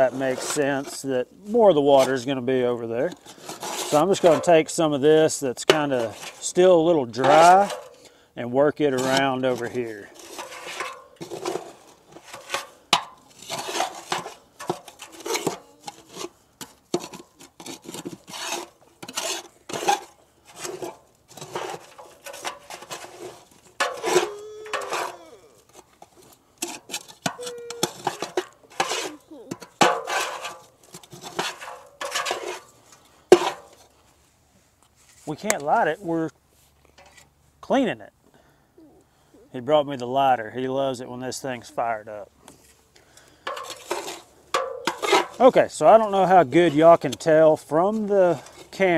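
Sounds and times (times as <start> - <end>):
metal tool scraping wet ash: 0.0 - 8.1, 8.8 - 34.0, 42.5 - 48.9.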